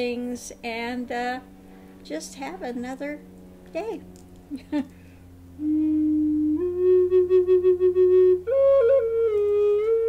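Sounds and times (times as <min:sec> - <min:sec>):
wooden flute slow melody: 0:05.6 - 0:10.0.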